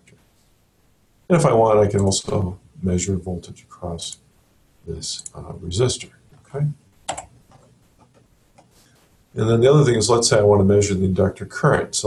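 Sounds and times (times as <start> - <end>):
computer mouse clicks: 7.0 - 8.8.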